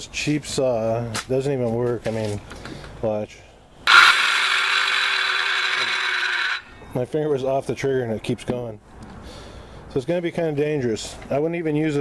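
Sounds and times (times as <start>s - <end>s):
circular saw running: 3.9s - 6.7s.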